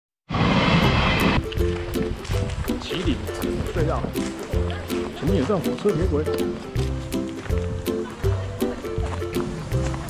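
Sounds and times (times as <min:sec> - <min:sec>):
background music with held notes: 0:00.9 - 0:10.0.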